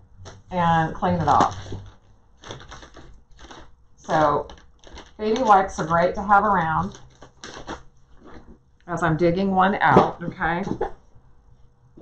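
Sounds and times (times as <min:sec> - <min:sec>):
baby wipe package rustling: 0:01.2 - 0:03.7, 0:04.4 - 0:06.3, 0:06.9 - 0:08.5.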